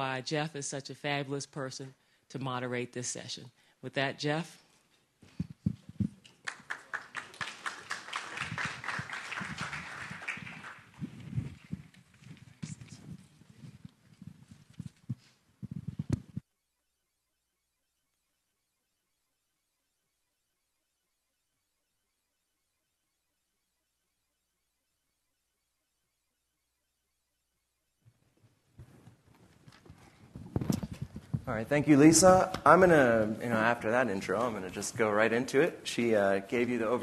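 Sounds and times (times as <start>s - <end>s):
footsteps on hollow stage floor: 11.0s - 16.4s, 28.3s - 31.5s
microphone handling knocks: 11.0s - 16.4s, 29.9s - 31.5s.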